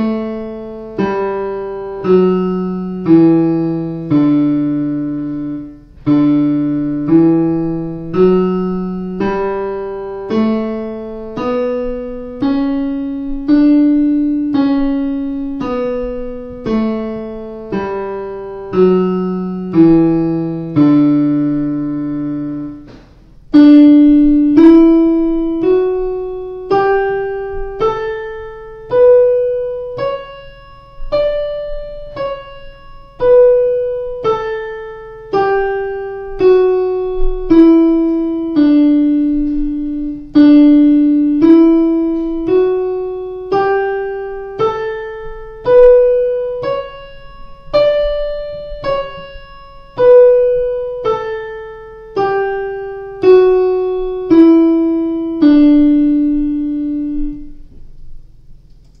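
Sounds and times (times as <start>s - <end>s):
digital piano playing a scale: 0.0s - 59.0s.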